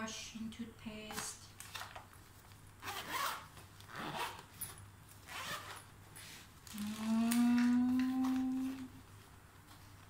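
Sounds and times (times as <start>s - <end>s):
zipper being pulled: 2.8s - 5.9s.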